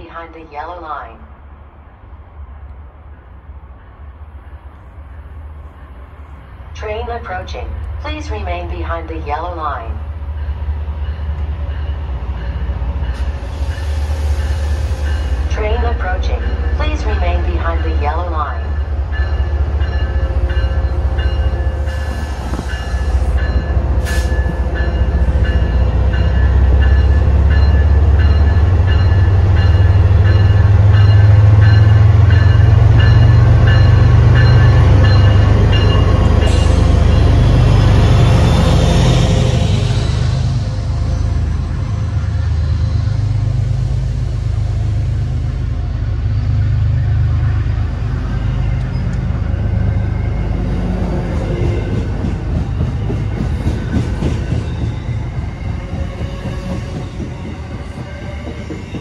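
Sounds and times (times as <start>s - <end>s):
diesel locomotive engine rumble: 0.0s - 59.0s
train coaches rolling: 3.2s - 59.0s.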